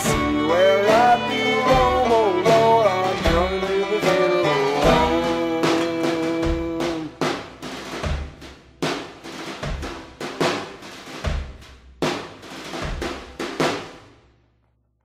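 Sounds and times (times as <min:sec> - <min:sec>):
slow drum beat: 0:00.0 - 0:14.1.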